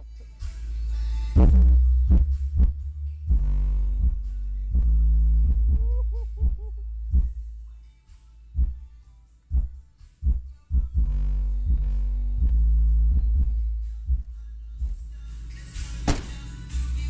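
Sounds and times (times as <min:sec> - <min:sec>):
bass-heavy music through subwoofers: 0:00.0 - 0:17.0
deep kick-drum hits: 0:01.4 - 0:04.2, 0:04.8 - 0:07.4, 0:09.5 - 0:11.8, 0:12.4 - 0:15.0.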